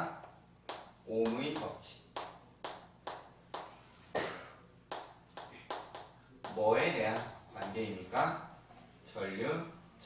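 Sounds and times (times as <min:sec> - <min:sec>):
chalk tapping on chalkboard: 0:00.7 - 0:03.8, 0:04.9 - 0:08.0.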